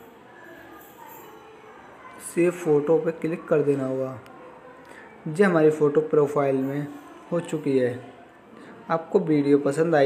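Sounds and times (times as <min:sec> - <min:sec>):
faint steady background noise: 0:00.0 - 0:10.0.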